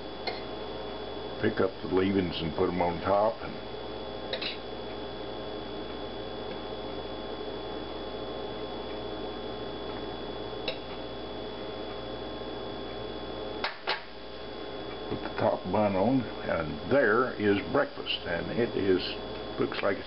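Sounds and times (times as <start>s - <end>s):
steady electrical hum: 0.0s - 20.0s.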